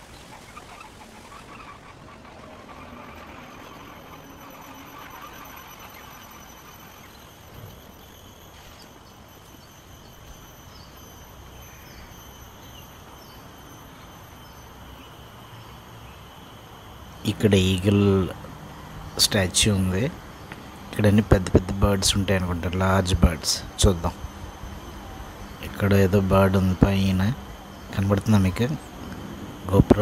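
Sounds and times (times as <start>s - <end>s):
faint bird chirps: 0.0s - 30.0s
steady background hiss: 0.0s - 30.0s
faint high steady tone: 1.2s - 30.0s.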